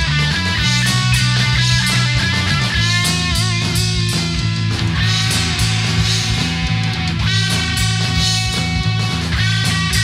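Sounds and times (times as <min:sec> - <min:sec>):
drum strikes: 0:00.0 - 0:10.0
rock band playing live: 0:00.0 - 0:10.0.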